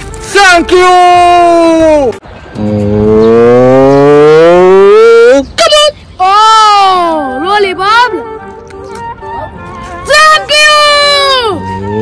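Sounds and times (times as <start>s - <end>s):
long rising call: 2.6s - 5.4s.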